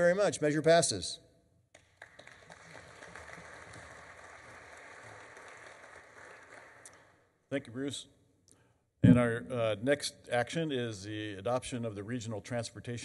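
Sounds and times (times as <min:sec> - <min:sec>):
audience applauding: 0:01.8 - 0:07.1.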